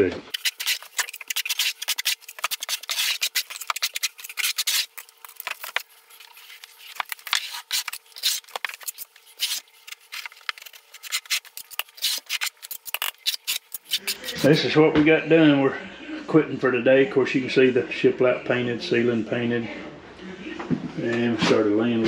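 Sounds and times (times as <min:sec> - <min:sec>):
trowel scraping mortar: 0:00.3 - 0:14.7.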